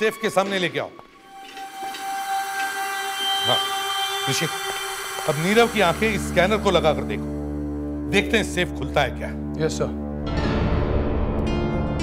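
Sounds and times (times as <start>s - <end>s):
synthesizer drone: 1.1s - 8.4s.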